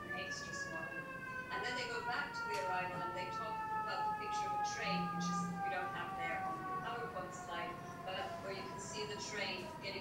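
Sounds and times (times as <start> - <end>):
steady whine sagging in pitch: 1.6 - 9.1.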